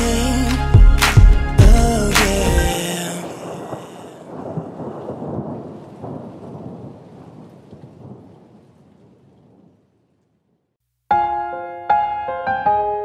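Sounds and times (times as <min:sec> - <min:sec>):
low rumbles: 0:00.0 - 0:02.7
rain-like rushing noise: 0:02.7 - 0:09.8.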